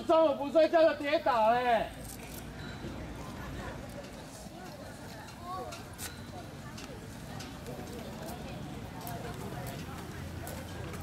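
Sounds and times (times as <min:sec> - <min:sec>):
background chatter of voices: 0:00.0 - 0:11.0.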